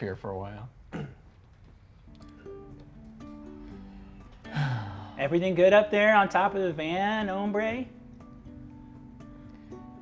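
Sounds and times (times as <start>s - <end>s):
soft plucked string music: 2.1s - 4.8s, 5.5s - 10.0s.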